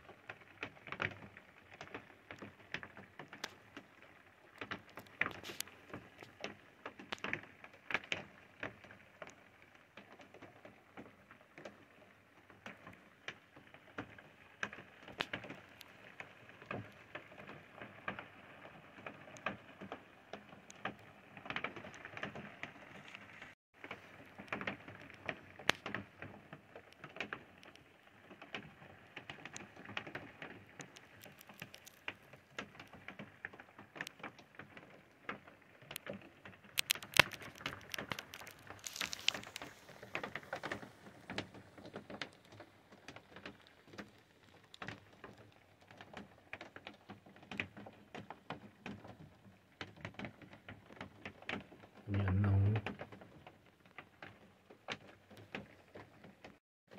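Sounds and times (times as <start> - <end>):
light rain pattering: 0.0 - 56.9.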